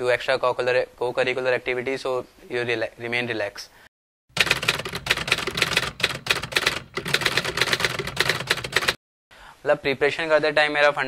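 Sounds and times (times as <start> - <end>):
typewriter keys clacking: 4.4 - 9.0.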